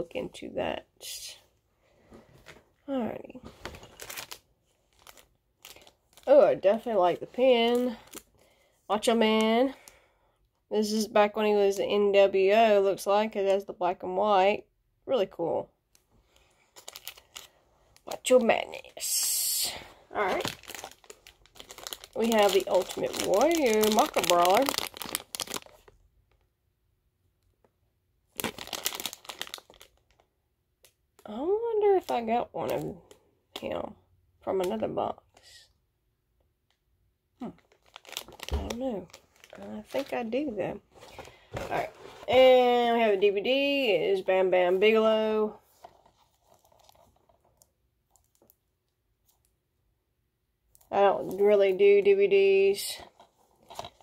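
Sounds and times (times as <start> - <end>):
plastic packaging crinkling: 3.6 - 10.0, 16.3 - 26.5, 28.3 - 30.3, 37.4 - 42.4, 45.6 - 48.6, 53.0 - 54.0.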